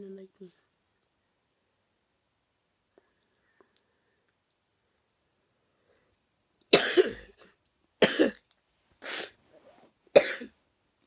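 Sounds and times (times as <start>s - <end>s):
boy coughing: 6.7s - 7.4s, 8.0s - 8.4s, 10.2s - 10.5s.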